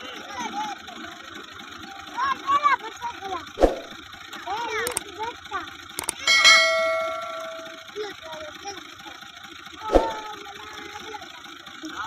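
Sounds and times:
diesel tractor engine idling: 0:00.0 - 0:12.0
sharp metallic knock: 0:06.0 - 0:07.9.

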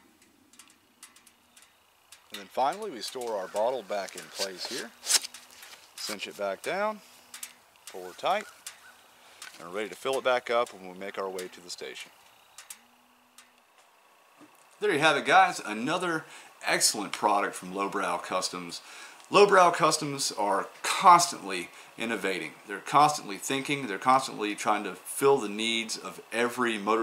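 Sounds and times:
faint ticks: 0:00.0 - 0:04.6, 0:05.3 - 0:14.8
faint light clicks: 0:00.2 - 0:04.3, 0:07.3 - 0:11.6.

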